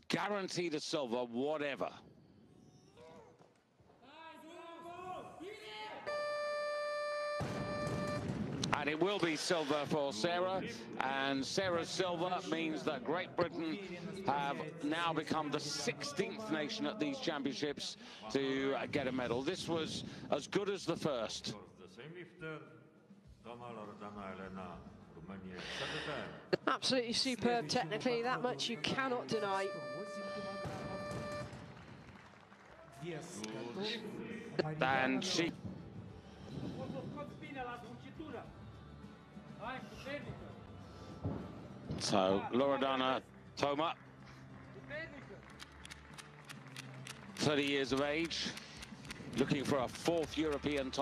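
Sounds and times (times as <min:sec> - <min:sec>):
faint background noise: 0:00.0 - 0:51.0
steady electronic beep: 0:06.1 - 0:08.3, 0:29.3 - 0:31.5
crowd noise: 0:43.2 - 0:51.0.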